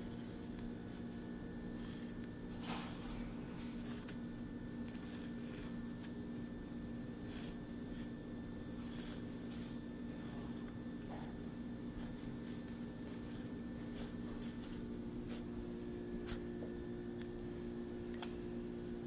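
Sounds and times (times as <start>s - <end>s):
low background hum: 0.0s - 19.0s
pen scratching on paper: 0.8s - 3.0s, 3.7s - 4.2s, 4.9s - 5.7s, 7.2s - 8.2s, 8.8s - 15.6s, 16.2s - 16.5s.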